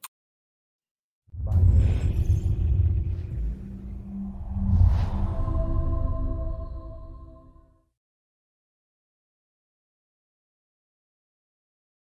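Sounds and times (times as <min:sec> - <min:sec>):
faint swish: 0:01.4 - 0:07.7.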